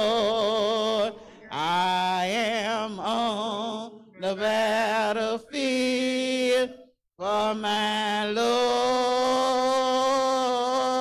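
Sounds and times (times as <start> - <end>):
man singing a hymn: 0.0 - 11.0.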